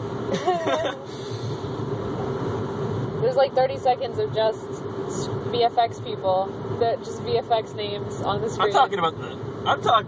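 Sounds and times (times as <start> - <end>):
car cabin noise: 0.0 - 10.0.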